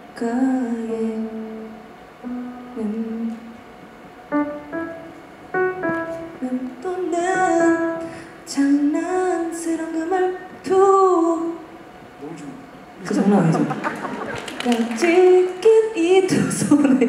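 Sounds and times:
woman singing into a microphone: 0.0 - 3.6, 6.2 - 11.7, 14.6 - 17.0
electric keyboard notes: 1.4 - 3.5, 4.3 - 8.3.

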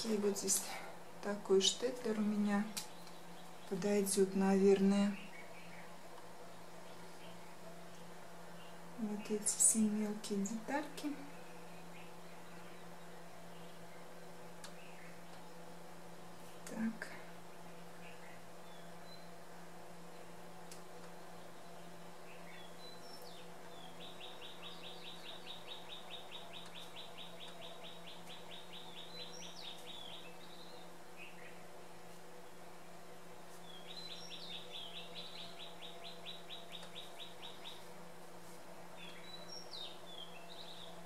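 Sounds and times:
steady low hum: 0.0 - 41.0
bird chirps: 21.5 - 31.6, 33.6 - 37.9.

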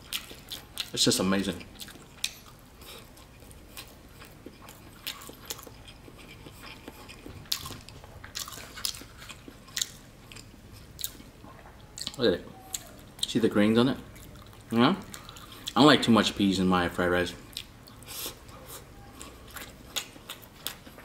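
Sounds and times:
chewing food: 0.0 - 13.4, 14.0 - 15.8, 17.4 - 21.0.

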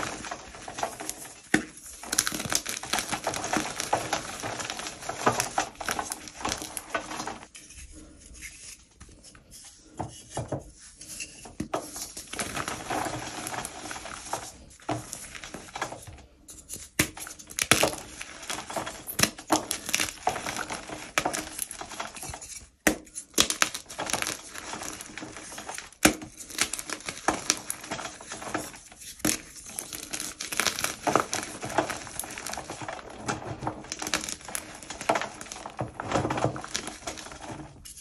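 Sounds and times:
chalk crumbling and crunching: 0.0 - 38.0.

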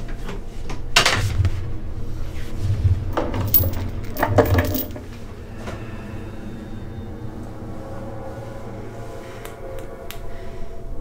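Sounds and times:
low steady drone: 1.5 - 11.0
metal instruments clinking on tray: 3.2 - 5.0.

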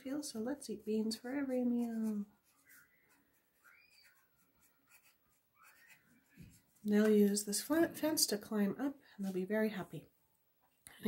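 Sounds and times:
pencil scratching on paper: 0.8 - 6.8.

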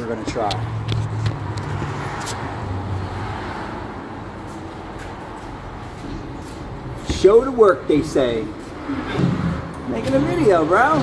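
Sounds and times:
vehicle engine humming: 0.0 - 11.0
workshop background noise: 0.0 - 11.0.

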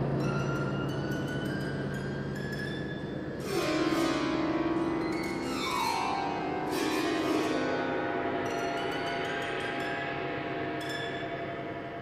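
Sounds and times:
chamber ensemble holding ringing tones: 0.0 - 12.0
high metallic percussion strikes: 5.0 - 12.0.

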